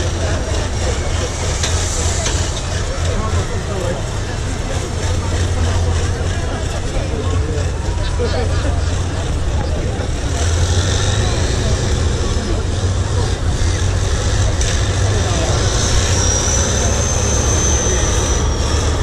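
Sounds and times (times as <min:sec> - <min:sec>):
crowd chatter: 0:00.0 - 0:19.0
truck diesel engine rumbling: 0:00.0 - 0:19.0.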